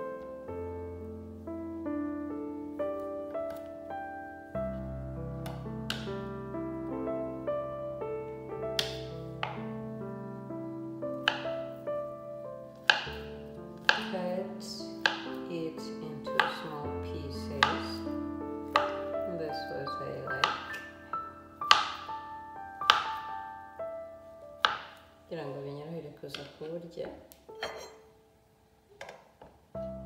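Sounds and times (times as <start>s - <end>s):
background music: 0.0s - 28.8s, 29.6s - 30.0s.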